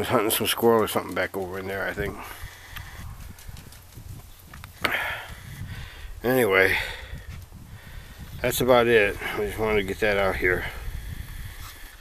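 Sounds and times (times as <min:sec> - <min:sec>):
wind rumble on microphone: 0:01.7 - 0:12.0
microphone handling noise: 0:01.9 - 0:06.2, 0:07.0 - 0:08.6.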